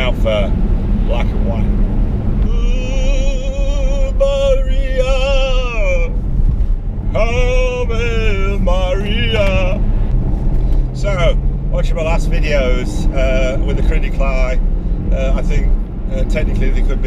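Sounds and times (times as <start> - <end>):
car cabin hum: 0.0 - 17.0.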